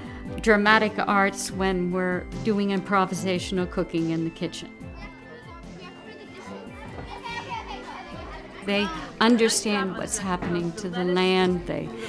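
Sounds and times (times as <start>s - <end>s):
background music: 0.0s - 12.0s
children chattering: 4.6s - 12.0s
woman speaking: 8.6s - 12.0s.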